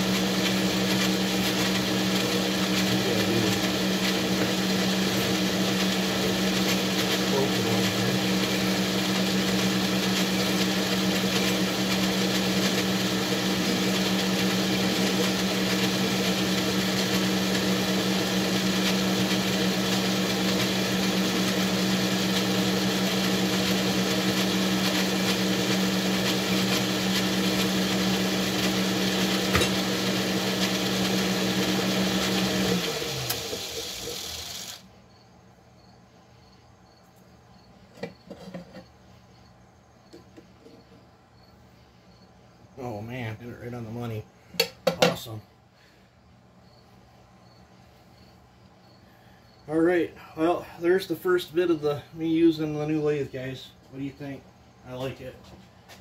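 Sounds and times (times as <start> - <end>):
metal lathe motor hum: 0.1 - 34.8.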